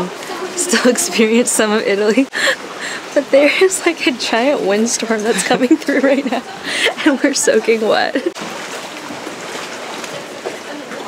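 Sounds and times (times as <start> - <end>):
rainy windstorm hiss: 0.0 - 9.9.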